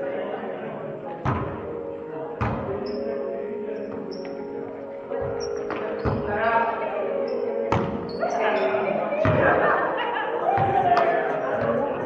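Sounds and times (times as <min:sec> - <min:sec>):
players' voices: 0:00.0 - 0:12.0
shoe squeaks on court floor: 0:02.8 - 0:03.1, 0:03.9 - 0:04.4, 0:05.3 - 0:09.0.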